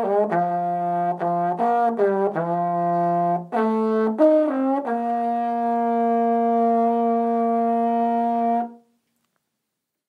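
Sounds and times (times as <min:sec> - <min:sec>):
trombone holding a long note: 0:00.0 - 0:08.8.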